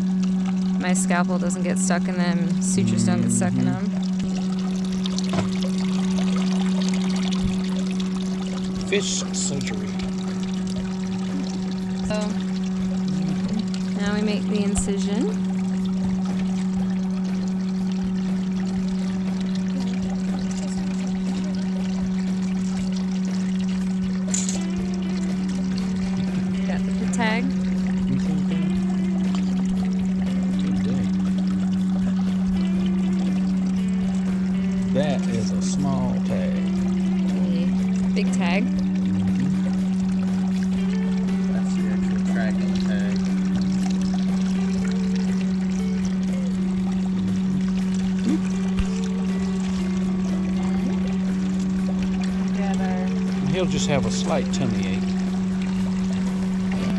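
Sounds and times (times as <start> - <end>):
water pouring and trickling: 0.0 - 56.9
water pump humming: 0.0 - 56.9.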